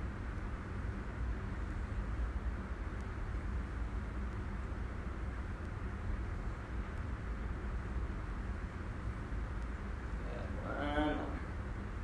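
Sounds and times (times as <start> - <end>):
low room rumble with soft hiss: 0.0 - 12.0.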